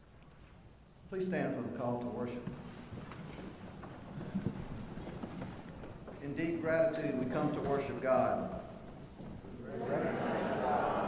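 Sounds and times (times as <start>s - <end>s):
people shuffling to their feet: 2.1s - 11.0s.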